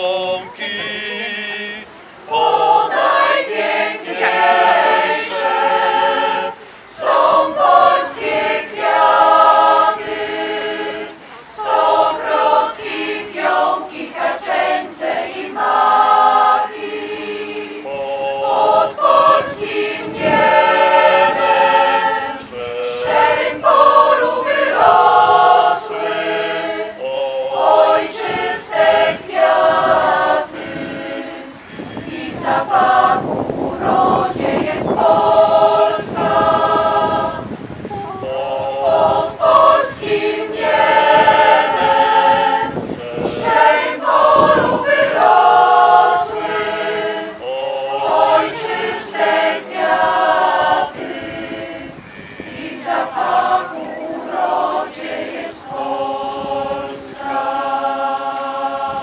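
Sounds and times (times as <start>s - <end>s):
mixed choir singing a cappella: 0.0s - 59.0s.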